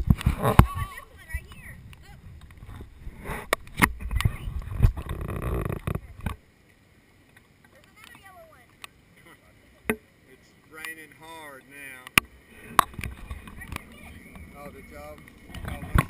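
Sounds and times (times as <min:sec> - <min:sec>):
faint voices: 0:07.7 - 0:16.0.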